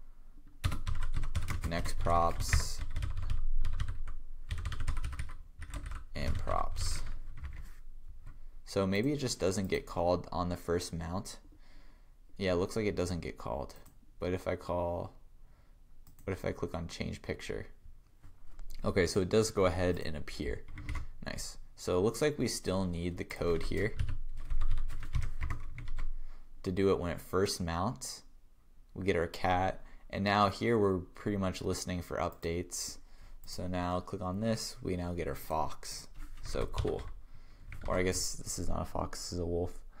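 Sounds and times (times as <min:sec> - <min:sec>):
computer keyboard typing: 0:00.6 - 0:08.4, 0:20.6 - 0:21.1, 0:23.5 - 0:26.1, 0:36.2 - 0:38.1.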